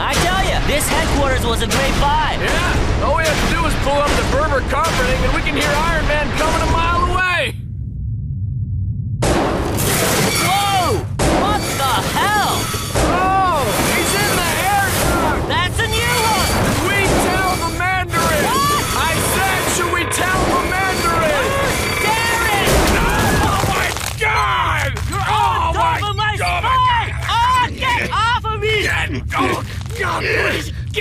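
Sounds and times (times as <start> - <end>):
booms and crashes: 0.0 - 7.4, 9.1 - 24.4
voices yelling: 10.3 - 31.0.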